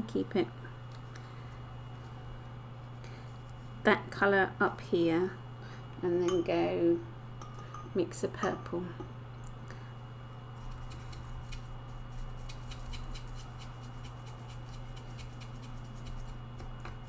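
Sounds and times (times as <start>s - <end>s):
low electrical hum: 0.0s - 17.0s
paintbrush ticking and scraping: 10.6s - 16.4s.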